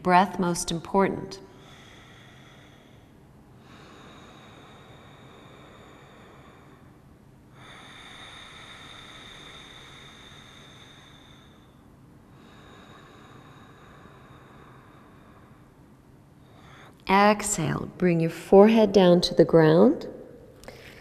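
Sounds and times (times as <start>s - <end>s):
slow hissing breaths: 1.4s - 17.0s.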